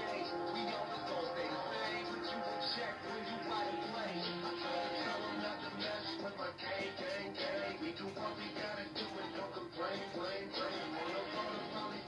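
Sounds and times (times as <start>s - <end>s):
film music from television speakers: 0.0s - 12.0s.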